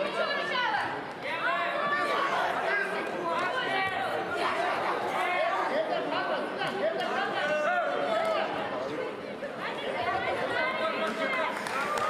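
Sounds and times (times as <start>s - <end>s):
voices shouting and talking: 0.0s - 12.0s.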